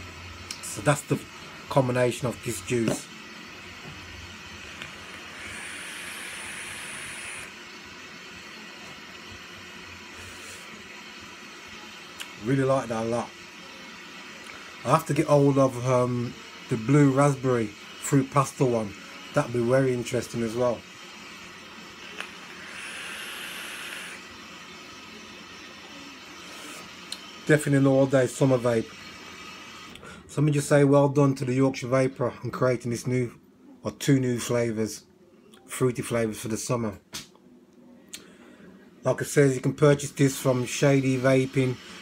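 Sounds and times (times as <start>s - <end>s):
thin high whine: 0.0s - 33.0s, 37.9s - 42.0s
e-cigarette hiss: 4.2s - 19.7s, 21.3s - 27.9s.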